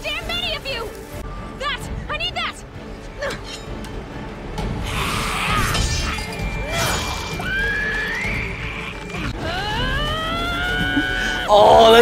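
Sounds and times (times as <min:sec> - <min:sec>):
action soundtrack music: 0:00.0 - 0:12.0.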